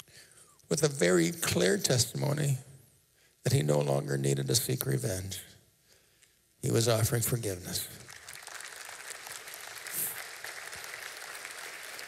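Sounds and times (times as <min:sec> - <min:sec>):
congregation applauding: 0:07.9 - 0:12.0.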